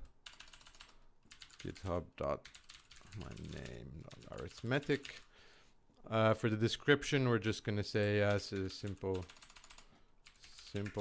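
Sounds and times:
computer keyboard typing: 0.1 - 5.3, 8.2 - 11.0
man talking: 1.6 - 5.3, 6.0 - 9.3, 10.4 - 11.0.

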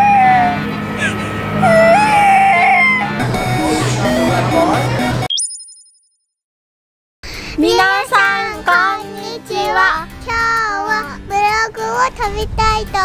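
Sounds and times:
backing music: 0.7 - 5.3, 7.6 - 12.0
child singing: 7.6 - 13.0.

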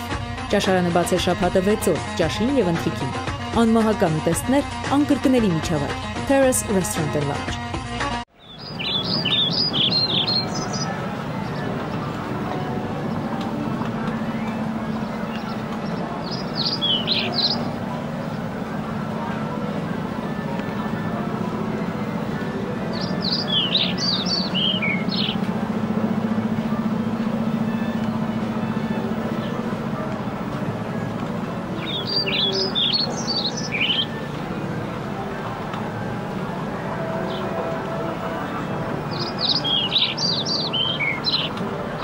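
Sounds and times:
birds chirping: 0.0 - 42.0
steady low hum: 8.5 - 42.0.

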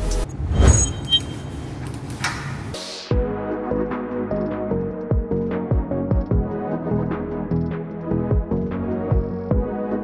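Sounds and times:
transition whoosh: 0.0 - 1.5.

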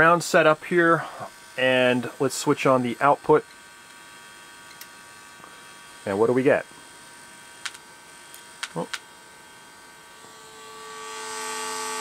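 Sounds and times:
speaker hiss: 8.6 - 9.0.

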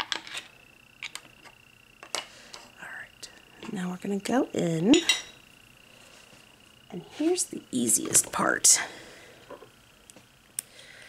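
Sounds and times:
faint high-pitched whine: 0.0 - 11.0
person speaking: 6.9 - 8.9.

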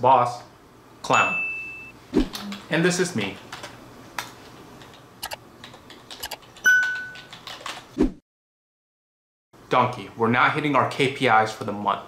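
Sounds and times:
electronic chime: 1.1 - 1.9
laptop keyboard typing: 4.8 - 7.9.

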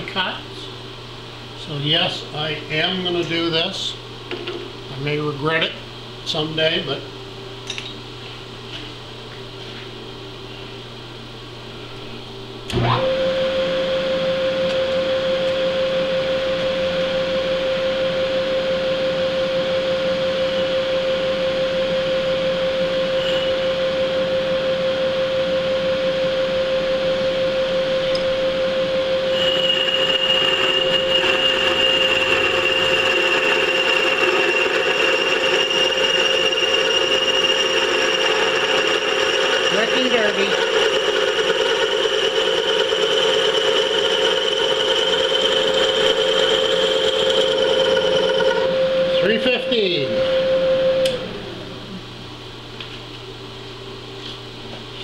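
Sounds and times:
milling machine spindle whine: 11.9 - 52.0
end mill cutting metal squeal: 23.2 - 23.6, 29.3 - 49.4.

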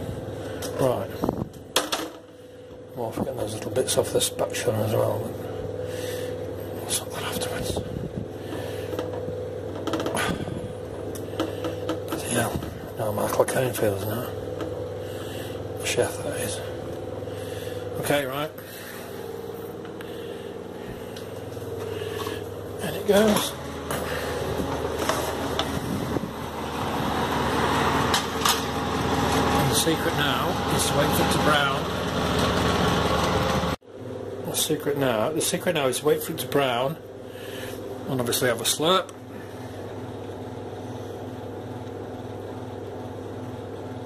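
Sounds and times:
kitchen fan humming: 0.0 - 44.0.

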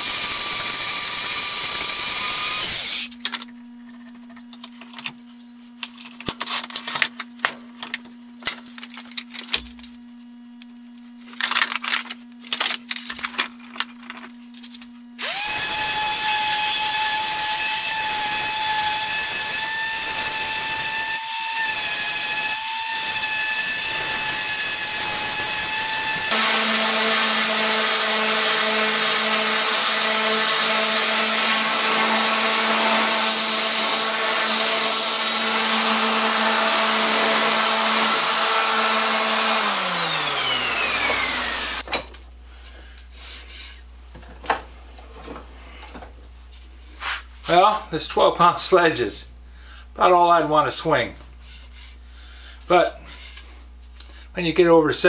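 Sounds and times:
orbital sander whining: 0.0 - 3.2, 15.2 - 41.8.

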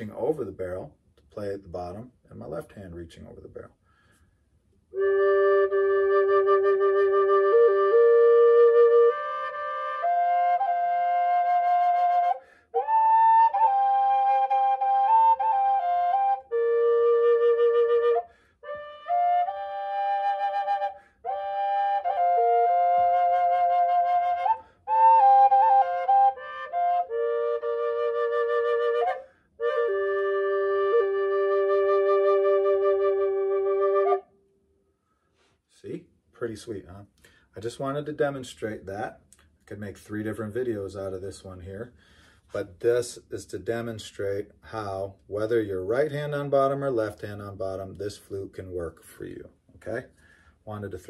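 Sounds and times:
drone flute melody: 5.0 - 34.3
player breathing: 42.0 - 42.5, 50.2 - 50.6.

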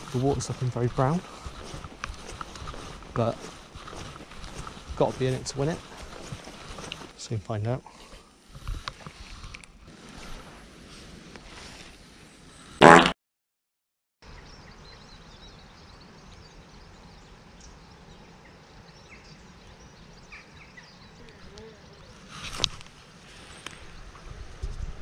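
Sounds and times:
outdoor background noise: 0.0 - 13.1, 14.2 - 25.0
short buzzy burst: 12.8 - 13.2.

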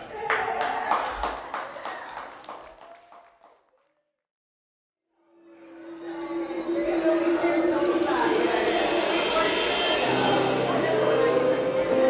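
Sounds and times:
audience clapping: 0.0 - 4.1.

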